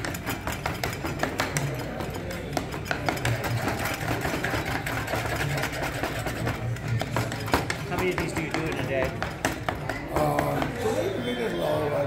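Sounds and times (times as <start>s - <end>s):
metal spoon scraping stone bowl: 0.0s - 9.2s.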